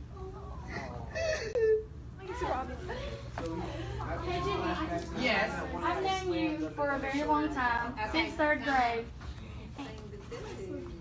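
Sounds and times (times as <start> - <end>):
boy crying with wailing sobs: 0.7 - 2.0.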